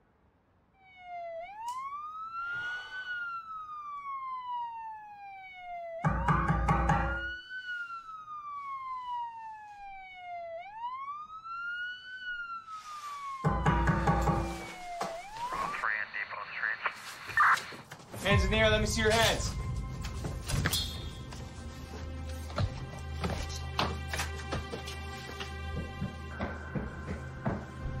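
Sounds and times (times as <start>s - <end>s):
siren wailing: 0.7s - 16.2s.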